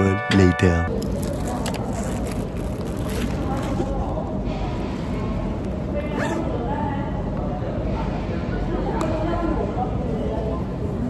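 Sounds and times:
chatter of many voices: 0.9 - 11.0.

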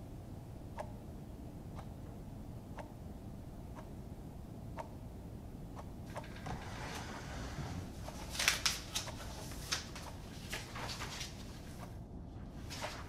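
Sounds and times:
clock ticking: 0.6 - 1.1, 2.7 - 4.0, 4.6 - 5.1
paper rustling and crinkling: 6.2 - 11.8, 12.6 - 13.0.

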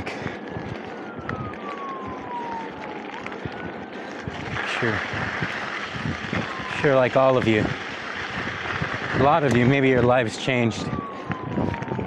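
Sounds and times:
distant siren wailing: 0.0 - 12.0
steady background noise: 0.0 - 12.0.

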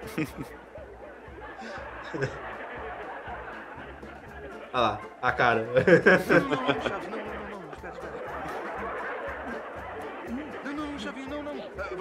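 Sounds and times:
light snickering laughter: 0.0 - 4.7, 5.7 - 10.9
background music: 0.0 - 12.0
voices: 0.0 - 12.0.

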